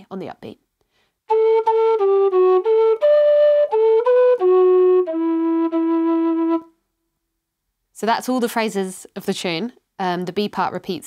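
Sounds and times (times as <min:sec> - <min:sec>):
low whistle playing march phrase: 0:01.3 - 0:06.7.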